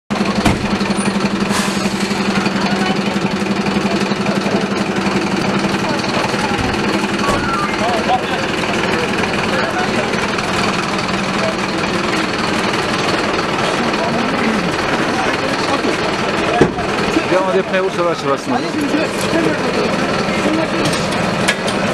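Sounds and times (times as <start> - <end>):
people talking: 1.9 - 21.4.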